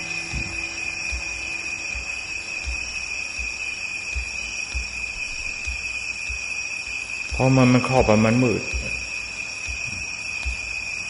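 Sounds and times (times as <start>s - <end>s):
faint low thuds: 0.0s - 10.9s
background hiss: 0.0s - 11.0s
high-pitched whine: 0.0s - 11.0s.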